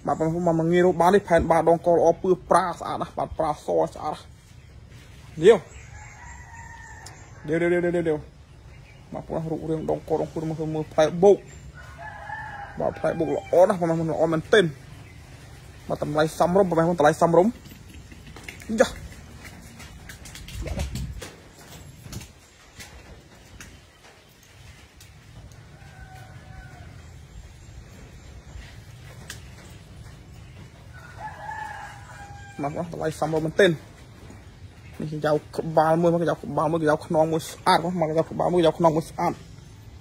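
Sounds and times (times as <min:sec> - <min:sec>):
faint rooster crowing: 0:05.7 - 0:07.6, 0:11.7 - 0:14.0, 0:25.4 - 0:27.6, 0:30.4 - 0:33.0
man speaking: 0:18.7 - 0:19.1.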